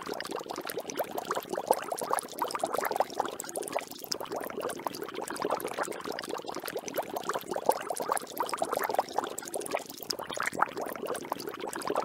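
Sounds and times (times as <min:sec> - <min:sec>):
water bubbling and gurgling: 0:00.0 - 0:12.0.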